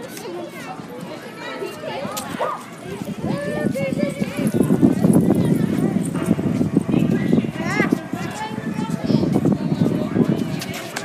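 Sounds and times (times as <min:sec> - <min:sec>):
children's footsteps on concrete: 0:00.0 - 0:11.0.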